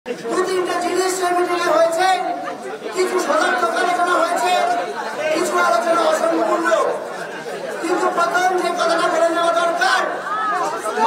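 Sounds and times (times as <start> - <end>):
man speaking over microphone: 0.1 - 11.0
voices chattering: 0.1 - 11.0.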